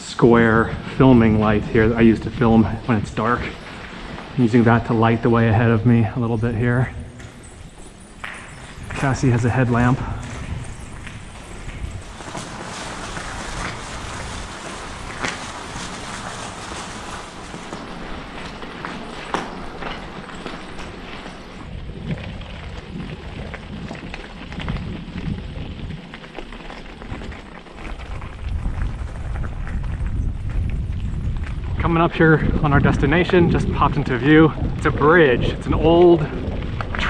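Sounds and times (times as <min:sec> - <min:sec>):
bicycle tyres rolling on gravel: 0:00.0 - 0:37.0
bike rattling: 0:00.0 - 0:37.0.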